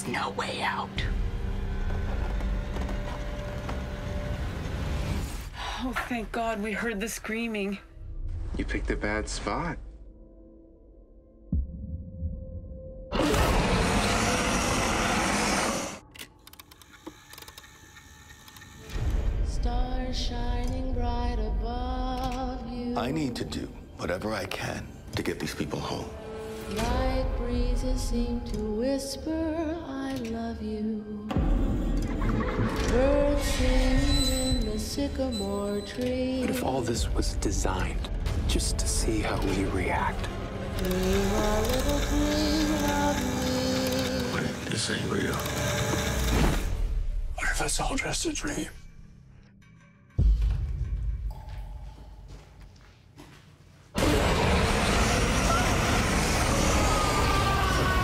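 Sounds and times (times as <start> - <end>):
slow trailer music: 0.0 - 58.0.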